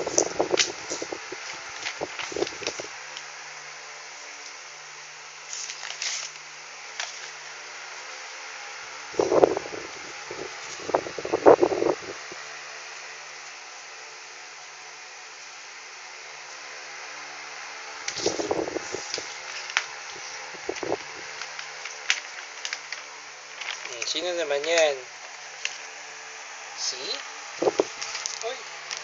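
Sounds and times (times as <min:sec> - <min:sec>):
fan whirring: 0:00.0 - 0:29.0.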